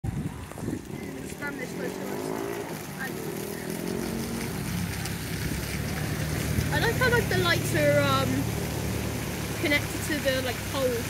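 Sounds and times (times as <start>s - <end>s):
vehicle engine droning: 0.2s - 11.0s.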